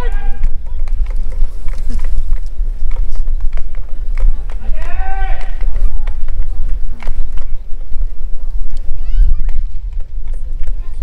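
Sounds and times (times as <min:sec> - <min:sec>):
person shouting a call: 0:00.0 - 0:00.6, 0:04.7 - 0:05.6.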